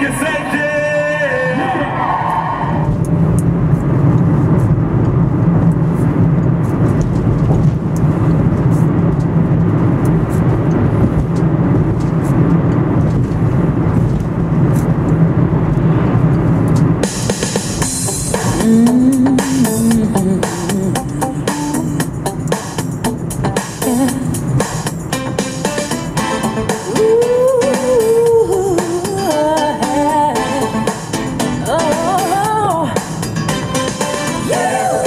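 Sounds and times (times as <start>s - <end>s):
car engine and tyre noise: 0.0s - 35.0s
song playing: 17.0s - 35.0s.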